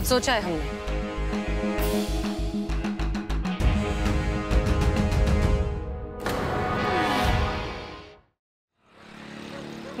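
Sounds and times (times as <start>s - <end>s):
music: 0.0s - 8.3s
motor scooter riding past: 8.8s - 10.0s.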